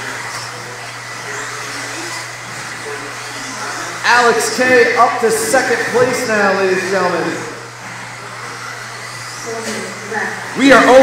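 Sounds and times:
rc car motors whirring: 0.0s - 11.0s.

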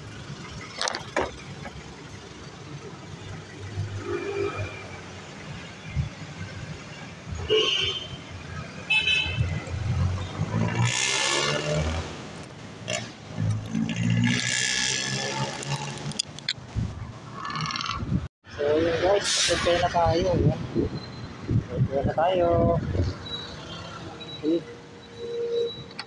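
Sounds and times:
vehicle engines running: 0.0s - 4.0s.

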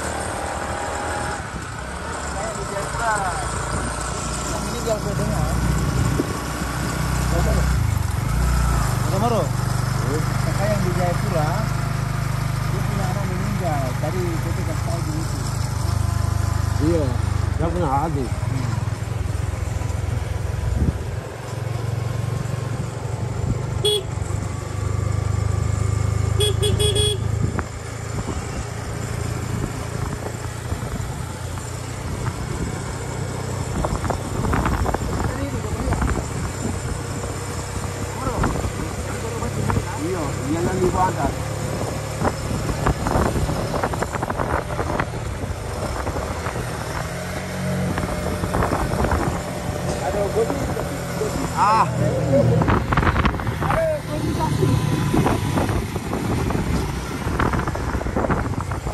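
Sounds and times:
motorcycle engine running: 0.0s - 58.9s
horn beeping: 23.8s - 24.2s, 26.4s - 27.3s.

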